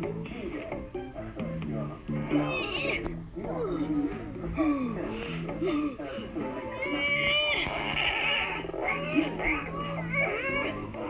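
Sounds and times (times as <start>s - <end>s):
background music with low notes: 0.0s - 11.0s
cartoon boy whining: 6.8s - 10.9s.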